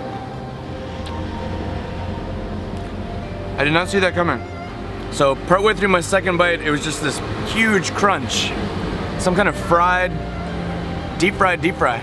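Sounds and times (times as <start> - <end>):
faint even tones: 0.0 - 7.4.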